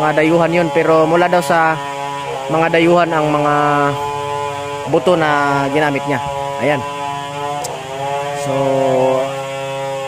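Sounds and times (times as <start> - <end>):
small engine buzzing drone: 0.0 - 10.0.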